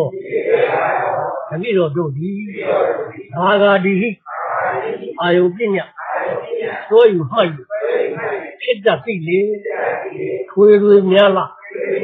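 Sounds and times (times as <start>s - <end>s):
man giving a sermon: 0.0s - 12.0s.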